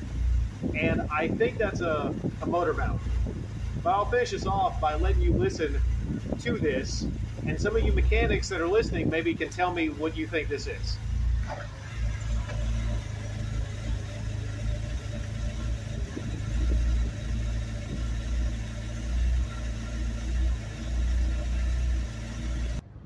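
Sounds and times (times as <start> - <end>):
car engine idling with surge: 0.0 - 23.0.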